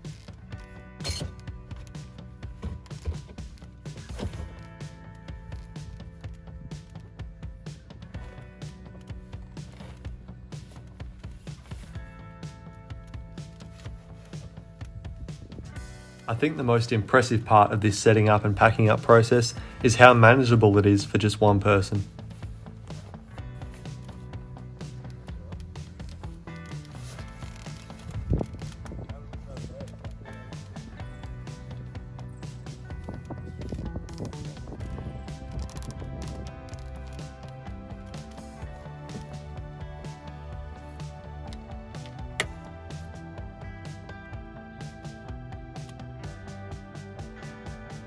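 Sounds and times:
background music with sustained notes: 0:00.0 - 0:48.0.

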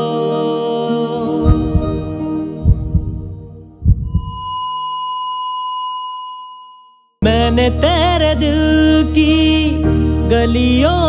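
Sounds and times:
low heartbeat-like thumps: 0:01.4 - 0:04.6
high electronic beep: 0:04.0 - 0:07.1.

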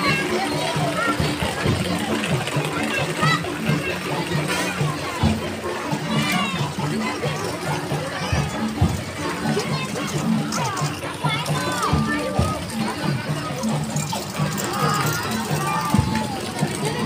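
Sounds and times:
crowd chatter and shouts: 0:00.0 - 0:17.0.

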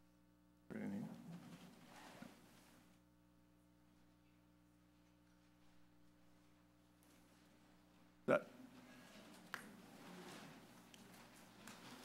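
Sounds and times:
faint room murmur: 0:00.6 - 0:12.0.

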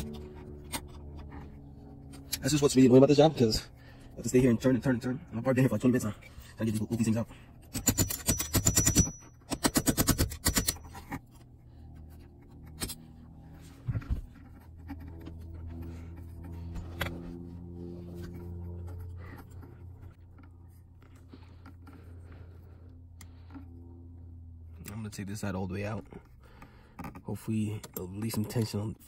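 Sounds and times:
metal tool scraping and clicking: 0:07.6 - 0:11.4
music with low held chords: 0:11.0 - 0:25.6.

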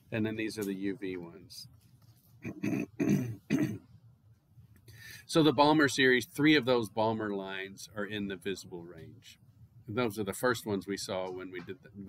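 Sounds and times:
man's throaty vocal bursts: 0:02.4 - 0:03.8.

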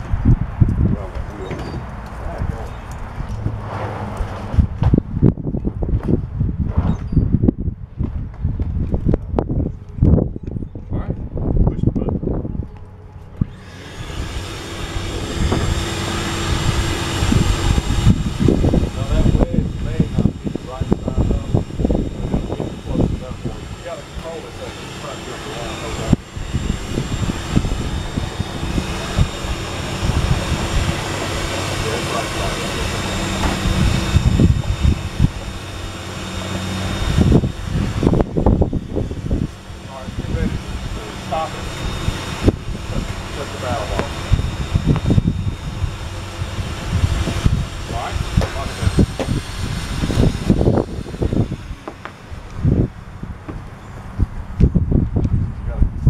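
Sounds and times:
shop vacuum motor whine: 0:12.8 - 0:55.7.

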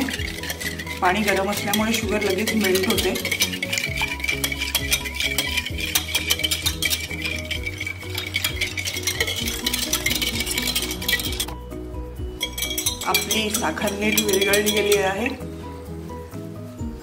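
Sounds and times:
whisk clinking in glass bowl: 0:00.0 - 0:11.6, 0:12.3 - 0:15.4
background music: 0:00.0 - 0:17.0.

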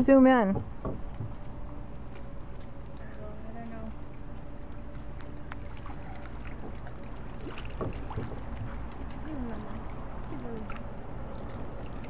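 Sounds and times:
pool water lapping and splashing: 0:00.0 - 0:12.0
steady low rumble: 0:00.0 - 0:12.0.

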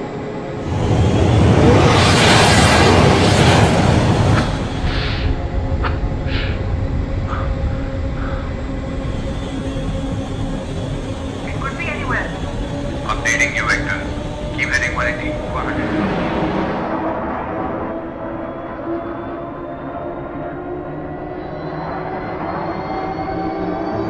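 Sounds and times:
fighter jet roaring past: 0:00.0 - 0:24.0
music: 0:04.8 - 0:24.0.

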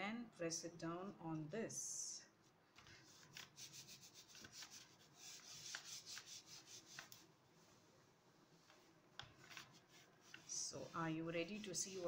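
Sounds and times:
palm swishing on paper: 0:02.8 - 0:07.9, 0:08.6 - 0:12.0.

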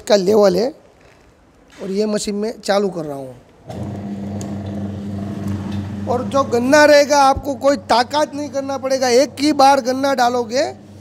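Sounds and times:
juice machine motor humming: 0:03.6 - 0:11.0.

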